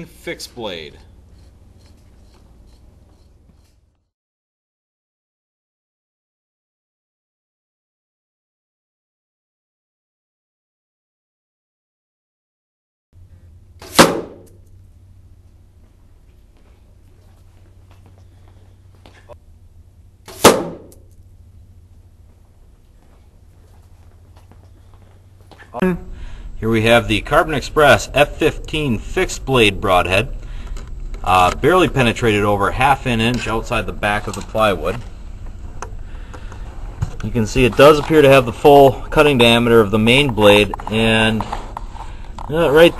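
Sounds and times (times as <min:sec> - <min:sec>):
low hum and hiss: 0:00.0 - 0:04.0, 0:13.2 - 0:42.9
arrow hitting target impact: 0:13.8 - 0:14.6, 0:20.3 - 0:21.1.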